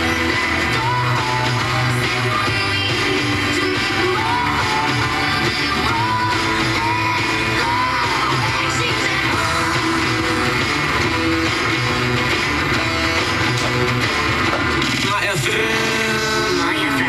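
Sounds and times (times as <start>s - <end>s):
pop song through loudspeaker: 0.0s - 17.0s.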